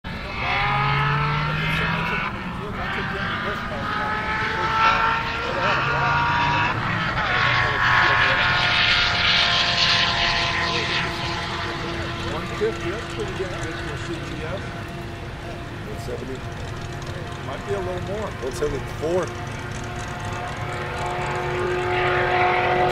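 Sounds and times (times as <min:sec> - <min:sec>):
car accelerating at full throttle: 0:00.1 - 0:22.9
gear upshifts: 0:00.1 - 0:22.9.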